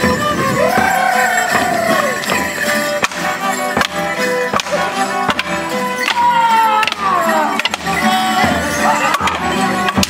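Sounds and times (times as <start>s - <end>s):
folk band with fiddles and drum: 0.0s - 10.0s
wooden sticks clacking: 0.7s - 10.0s.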